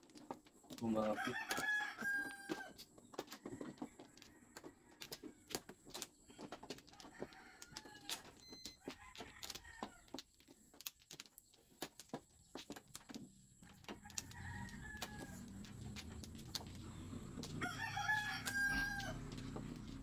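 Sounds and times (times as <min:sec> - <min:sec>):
mahjong tiles clicking: 0:00.0 - 0:03.4, 0:04.0 - 0:20.0
rooster crowing: 0:01.0 - 0:02.8, 0:07.0 - 0:10.0, 0:14.0 - 0:16.2, 0:17.4 - 0:20.0.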